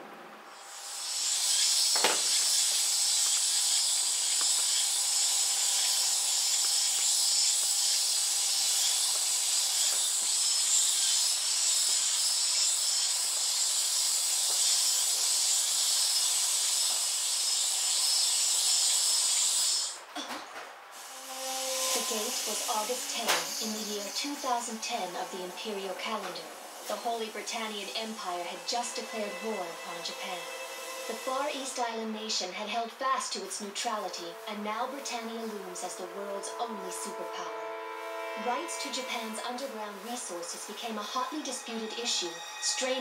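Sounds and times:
high-pitched hiss: 0:00.5 - 0:20.0, 0:20.9 - 0:32.2, 0:33.3 - 0:43.0.

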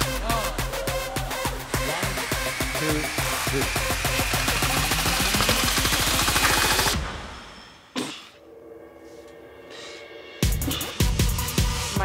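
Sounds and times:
electronic dance music: 0:00.0 - 0:07.0.

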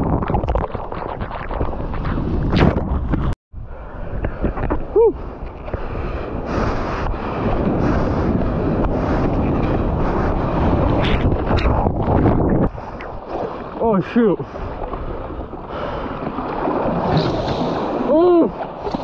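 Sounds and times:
wind buffeting microphone: 0:00.0 - 0:19.0
waves breaking on sand: 0:12.8 - 0:19.0.

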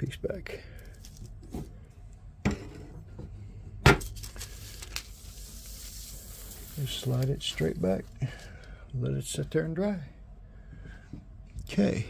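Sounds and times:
paper rustling and sliding: 0:04.0 - 0:08.4.

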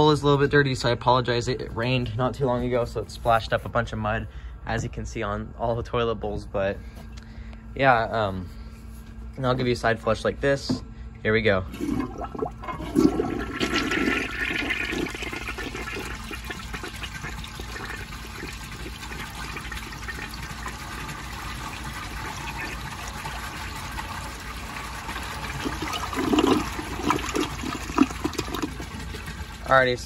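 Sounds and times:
toilet flushing: 0:11.7 - 0:30.0
water gurgling in toilet bowl: 0:11.7 - 0:30.0.

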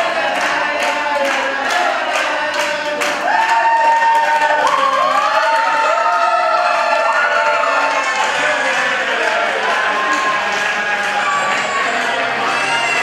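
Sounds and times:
group singing: 0:00.0 - 0:13.0
rhythmic clapping: 0:00.0 - 0:13.0.

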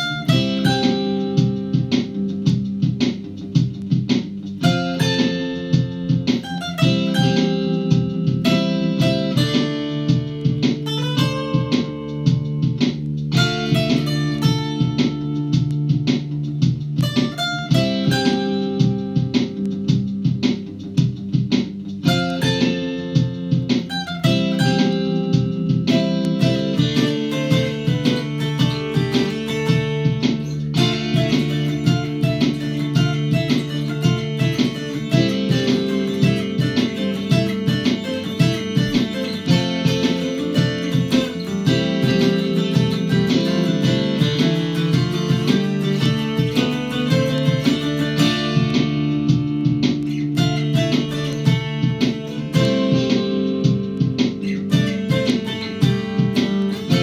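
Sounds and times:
layered looped dulcimer parts: 0:22.0 - 0:49.2.

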